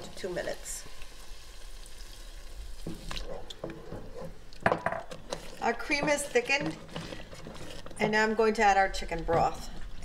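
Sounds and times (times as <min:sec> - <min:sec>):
cream cooking in a pot: 0:00.0 - 0:10.0
wooden spoon knocking on pot: 0:02.8 - 0:09.7.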